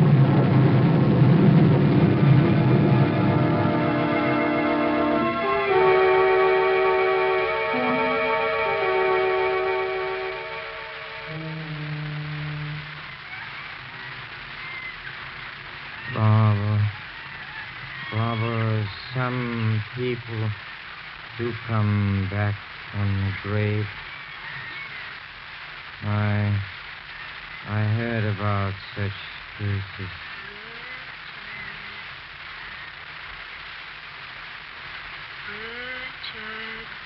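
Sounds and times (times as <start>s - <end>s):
organ chords: 0.0s - 13.1s.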